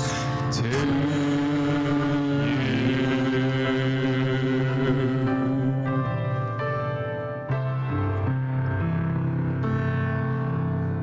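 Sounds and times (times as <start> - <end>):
vocal quartet singing chords: 0.0 - 7.1.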